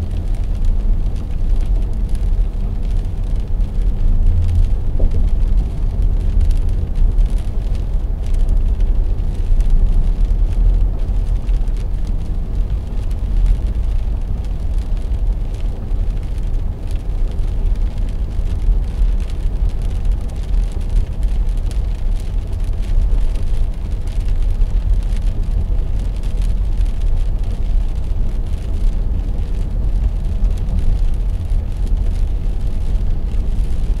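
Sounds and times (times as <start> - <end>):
car engine and tyre rumble: 0.0 - 34.0.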